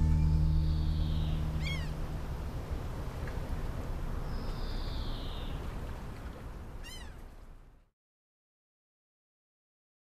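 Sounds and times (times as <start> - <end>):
held music chord: 0.0 - 2.7
outdoor background noise: 0.0 - 7.9
high animal cry: 1.2 - 2.0, 6.8 - 7.2.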